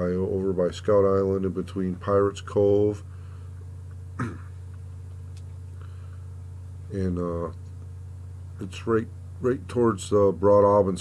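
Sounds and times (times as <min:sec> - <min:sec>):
low room hum: 0:00.0 - 0:11.0
man coughing: 0:04.2 - 0:04.6.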